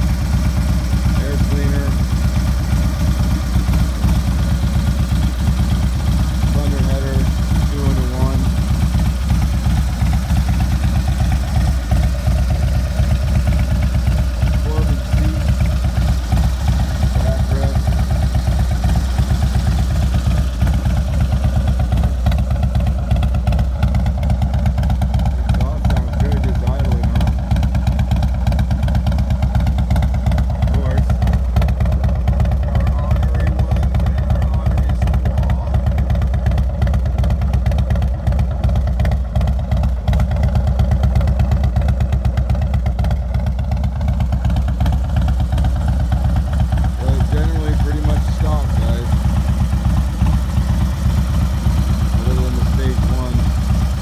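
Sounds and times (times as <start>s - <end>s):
motorcycle engine idling: 0.0s - 54.0s.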